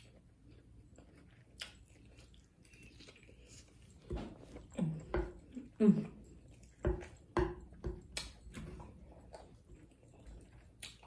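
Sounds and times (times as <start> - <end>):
soft eating clicks and taps: 3.8 - 11.0.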